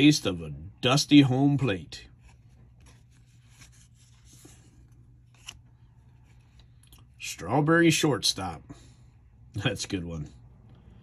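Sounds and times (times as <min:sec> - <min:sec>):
trading cards rustling: 0:02.1 - 0:07.1.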